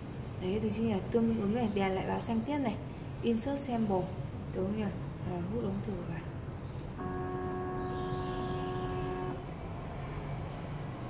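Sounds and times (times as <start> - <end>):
low steady hum: 0.0 - 10.2.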